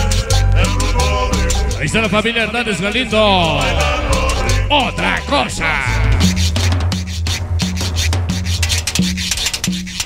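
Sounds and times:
bass line: 1.6s - 6.5s.

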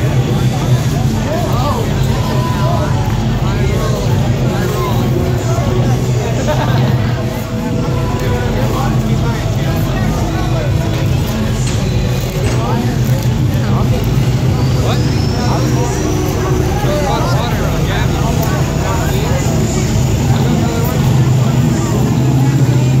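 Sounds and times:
high whine: 0.0s - 23.0s
people's voices: 0.0s - 23.0s.

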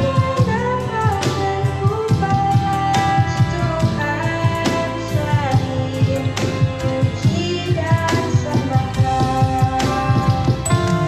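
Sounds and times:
girl singing worship song: 0.0s - 11.0s.

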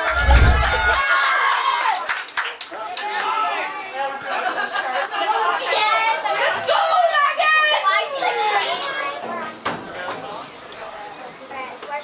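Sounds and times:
players and spectators shouting: 0.0s - 1.8s.

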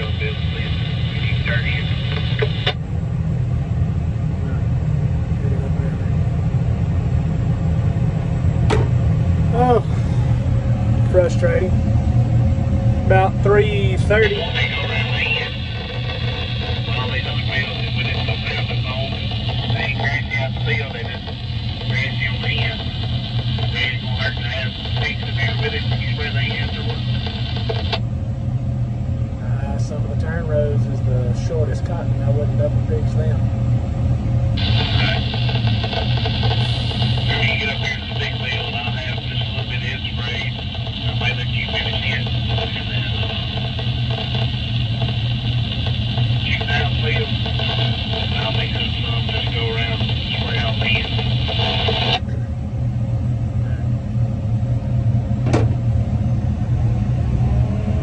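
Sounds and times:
voices over two-way radio: 0.0s - 2.8s, 13.2s - 28.0s, 34.6s - 52.4s
low drone of tractor engine: 0.0s - 58.0s.

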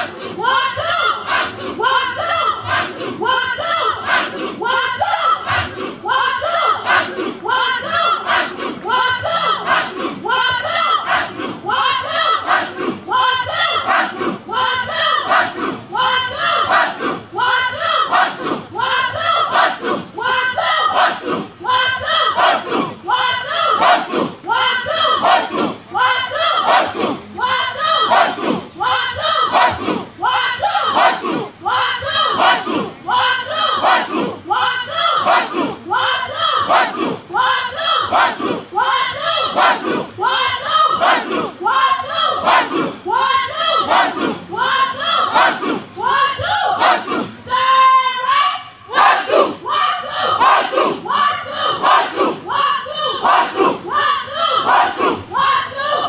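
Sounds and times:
group chanting cadence: 0.0s - 56.0s.

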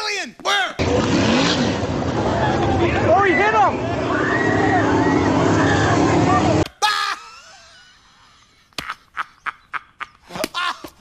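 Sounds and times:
race car engines: 0.8s - 6.6s
spectators' voices and calls: 1.8s - 6.6s.

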